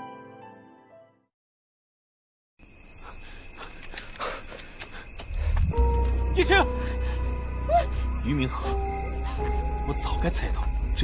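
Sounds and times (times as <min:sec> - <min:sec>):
insects chirring: 0:02.6 - 0:11.0
deep low drone: 0:05.3 - 0:07.4.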